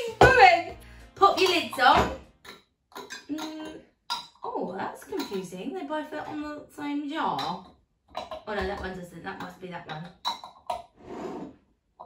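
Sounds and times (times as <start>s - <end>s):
metal lids clinking on glass jars: 1.2s - 6.6s, 7.2s - 10.9s.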